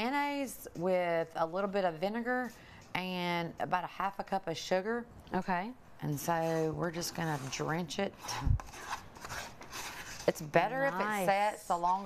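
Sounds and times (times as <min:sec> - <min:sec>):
metal spoon scraping a ramekin: 0:06.2 - 0:10.7.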